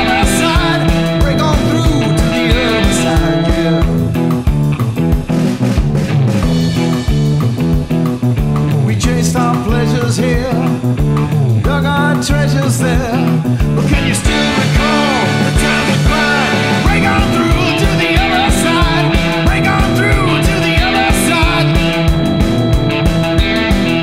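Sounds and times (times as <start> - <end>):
drums and bass backing track: 0.0 - 24.0
electric guitar rock music: 0.0 - 24.0.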